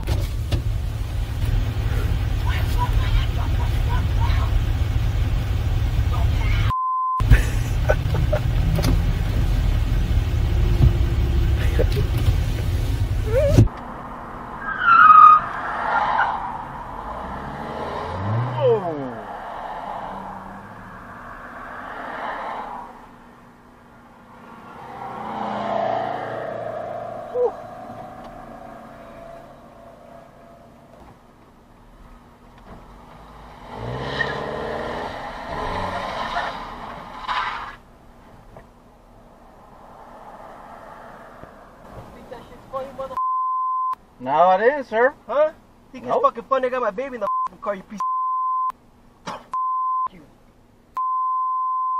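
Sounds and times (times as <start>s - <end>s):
engine revving: 0.0s - 13.7s, 14.4s - 23.0s, 24.3s - 31.0s, 32.7s - 37.7s
low rumble inside car: 0.0s - 14.1s
cars passing: 0.0s - 43.2s
road noise: 0.0s - 51.7s.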